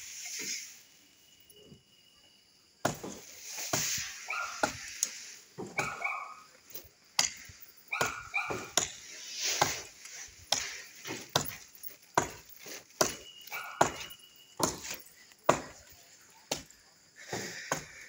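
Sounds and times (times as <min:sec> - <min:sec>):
blade chopping into wood: 0:02.8 - 0:04.9, 0:07.2 - 0:11.6, 0:12.2 - 0:15.8
dog barking: 0:04.2 - 0:04.8, 0:05.7 - 0:06.5, 0:07.9 - 0:08.8, 0:13.5 - 0:14.1.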